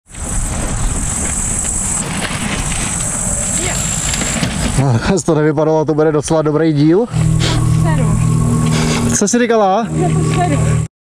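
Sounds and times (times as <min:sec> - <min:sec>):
low wind rumble: 0:00.0 - 0:10.9
thin high-pitched whine: 0:06.8 - 0:10.9.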